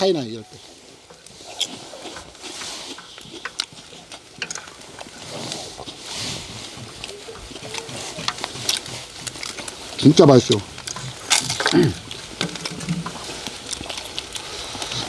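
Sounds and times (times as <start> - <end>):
wooden spoons scraping a wok: 0.6 - 13.7
chewing and lip-smacking: 1.2 - 15.0.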